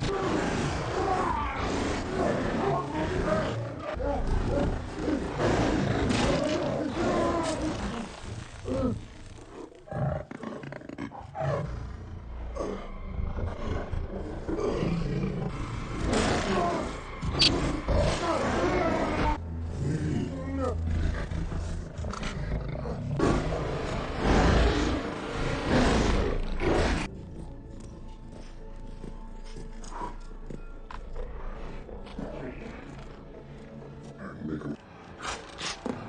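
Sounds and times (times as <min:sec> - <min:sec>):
tiger snarling and roaring: 0:00.0 - 0:27.2.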